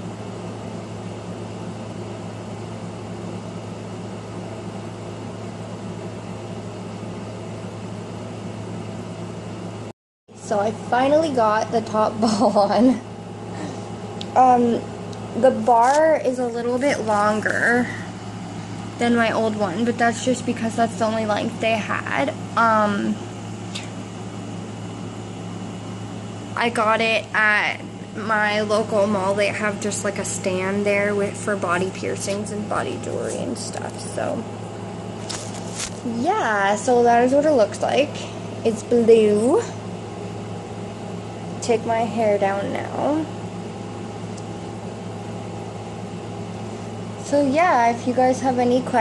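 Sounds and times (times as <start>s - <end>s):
indoor room hum and hiss: 0.0s - 49.0s.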